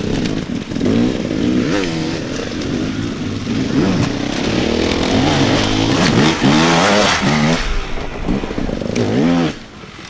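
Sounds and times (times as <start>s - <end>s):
dirt bike engine revving: 0.0s - 10.0s.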